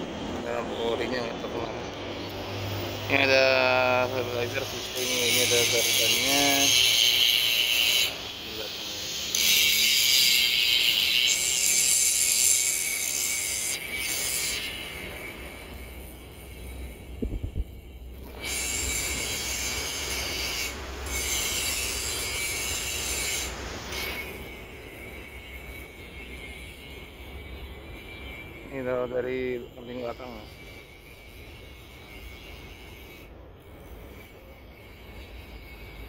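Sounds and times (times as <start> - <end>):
high-pitched buzzing hiss: 0.0 - 36.0
faint low rumble: 17.2 - 18.1.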